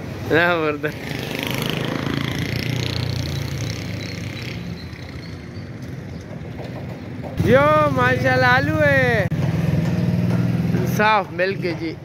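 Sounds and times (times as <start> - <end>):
street noise: 0.0 - 12.0
motorcycle engine running: 7.3 - 11.7
man talking: 7.4 - 9.3.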